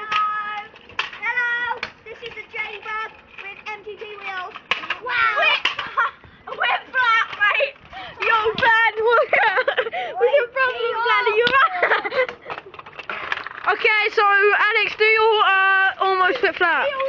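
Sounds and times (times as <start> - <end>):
boys talking: 0.0 - 12.8, 13.6 - 17.0.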